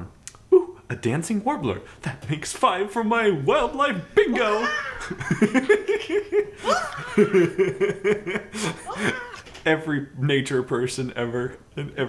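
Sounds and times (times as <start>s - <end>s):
man laughing heartily: 4.4s - 9.5s.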